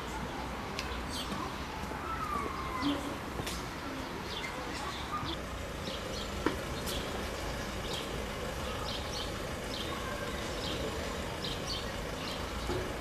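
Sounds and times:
distant traffic hum: 0:00.0 - 0:13.0
small birds chirping: 0:00.0 - 0:13.0.

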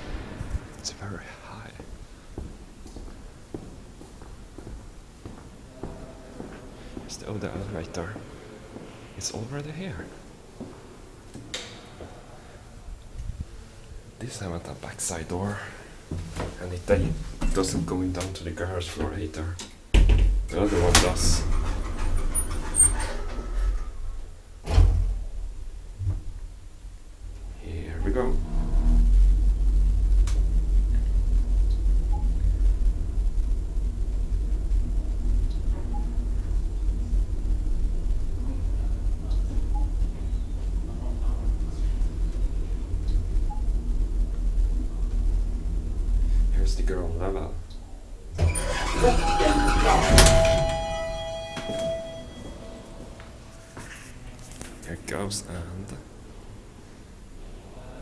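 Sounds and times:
elevator doors closing thud: 0:19.9 - 0:25.3, 0:48.3 - 0:52.8
elevator door clunk: 0:48.4 - 0:53.0
elevator two-tone chime: 0:48.5 - 0:53.4.

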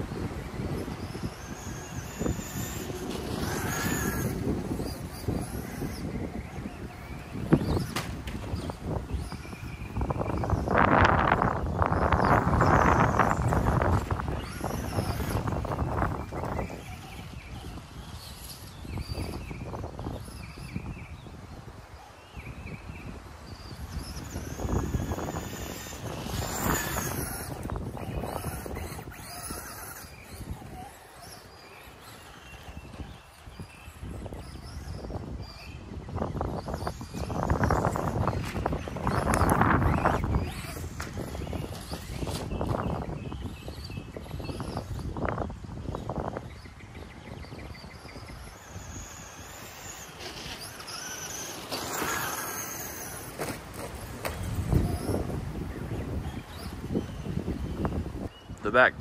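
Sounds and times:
toy truck electric motor whining: 0:00.0 - 0:58.3
wind on microphone: 0:00.0 - 0:59.0.

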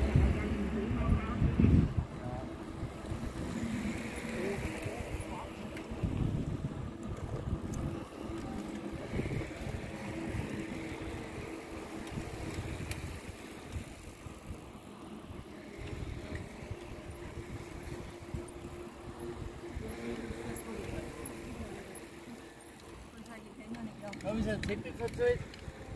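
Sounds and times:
bicycles rolling on asphalt: 0:00.0 - 0:25.9
wind rumbling on microphone: 0:00.0 - 0:25.9.

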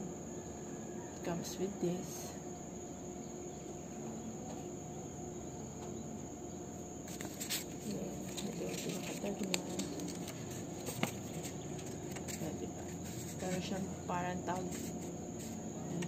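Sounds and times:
paper rustling: 0:07.1 - 0:16.0.

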